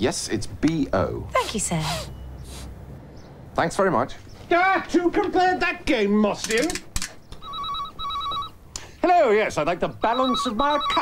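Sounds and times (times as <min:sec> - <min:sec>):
telephone electronic ringer trilling: 0:07.4 - 0:08.6, 0:10.0 - 0:11.0.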